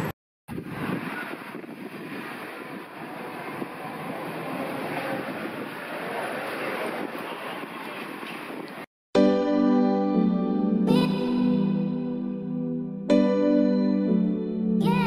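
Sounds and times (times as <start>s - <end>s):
street traffic noise: 0.0s - 8.9s.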